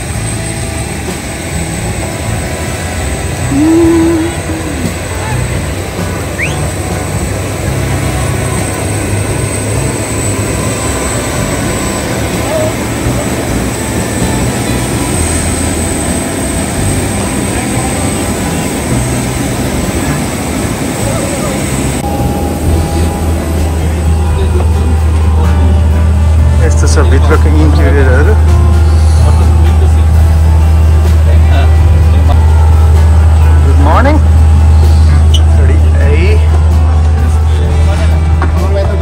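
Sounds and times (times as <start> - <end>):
jet aircraft rumble and whine: 0.0 - 39.0
low hum: 0.0 - 39.0.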